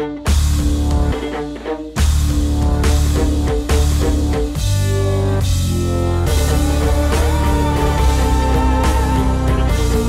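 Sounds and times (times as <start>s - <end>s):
rock music with guitar and drums: 0.0s - 10.0s.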